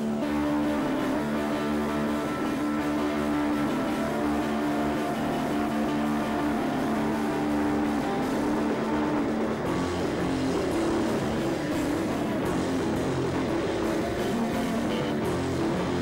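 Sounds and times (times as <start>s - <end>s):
bass guitar: 0.0s - 16.0s
distorted electric guitar: 0.0s - 16.0s
drums: 0.0s - 16.0s.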